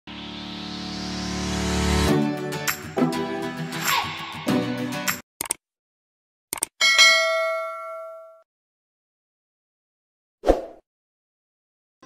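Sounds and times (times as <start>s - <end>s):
bright bell ding: 6.8s - 8.4s.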